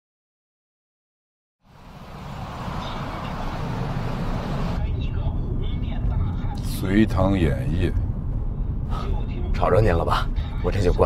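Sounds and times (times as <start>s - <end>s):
car driving past: 1.7s - 4.8s
muffled car cabin hum: 2.0s - 6.7s
man's voice on car radio: 4.6s - 8.1s, 8.9s - 11.0s.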